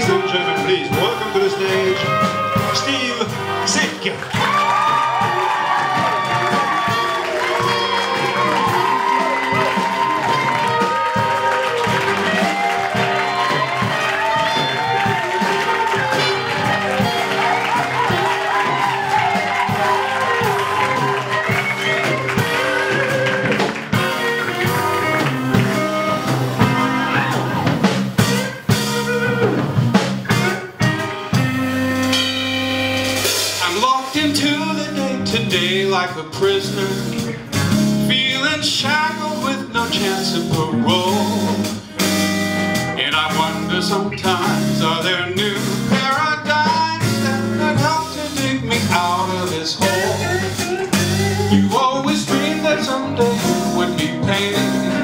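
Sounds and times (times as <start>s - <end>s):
drum kit: 0.0s - 55.0s
electric bass: 0.0s - 55.0s
piano: 0.0s - 55.0s
small live band playing: 0.0s - 55.0s.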